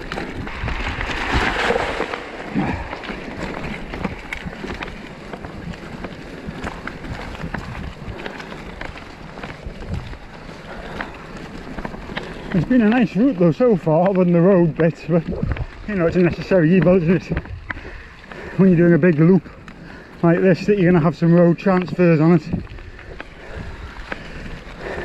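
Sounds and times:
bike clicks and rattles: 0:00.0 - 0:25.0
tyres crunching on gravel: 0:00.0 - 0:25.0
wind buffeting microphone: 0:00.0 - 0:25.0.

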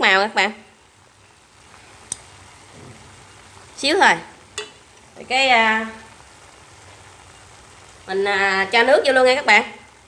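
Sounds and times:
chicken sizzling in a pot: 0:00.0 - 0:10.0
metal spoon clicking on pot: 0:04.6 - 0:04.8.

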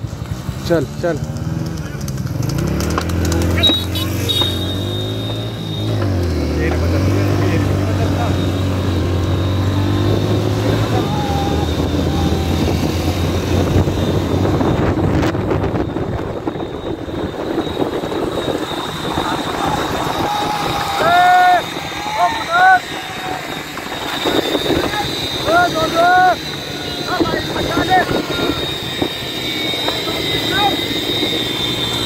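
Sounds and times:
motorcycle engines running: 0:00.0 - 0:32.0
men shouting: 0:07.0 - 0:13.5, 0:19.0 - 0:29.0
wind noise: 0:09.5 - 0:26.0.

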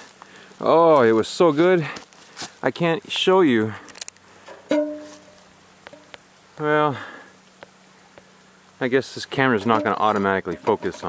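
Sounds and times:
metal pot ringing: 0:04.7 - 0:05.4.

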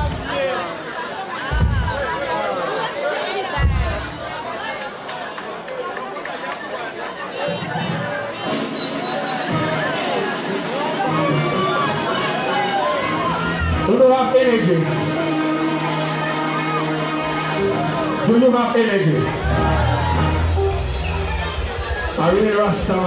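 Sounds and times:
crowd chatter and shouting: 0:00.0 - 0:23.0
deep bass thumps: 0:01.5 - 0:02.1
high whistle-like tone: 0:08.4 - 0:09.7, 0:20.6 - 0:22.0
music: 0:08.4 - 0:23.0.

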